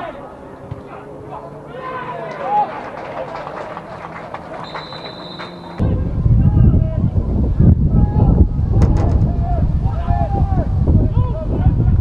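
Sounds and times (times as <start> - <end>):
people shouting: 0.9 - 3.0
referee's whistle blast: 4.6 - 5.8
loud wind noise: 5.8 - 12.0.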